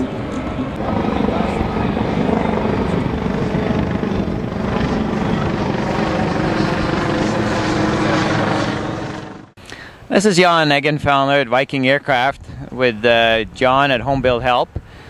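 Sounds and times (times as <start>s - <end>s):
crowd voices: 0.0s - 8.9s
aircraft engine drone: 0.0s - 10.0s.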